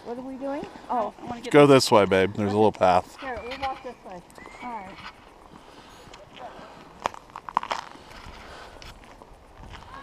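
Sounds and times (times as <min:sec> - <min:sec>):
footsteps crunching on snow: 0:02.7 - 0:10.0.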